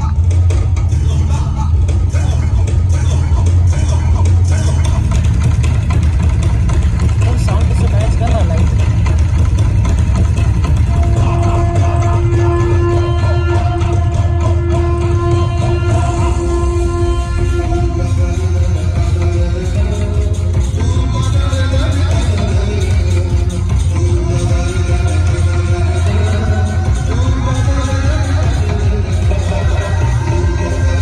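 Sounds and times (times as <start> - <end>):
loud music with heavy bass: 0.0 - 31.0
voices over music: 7.0 - 8.9, 10.8 - 31.0.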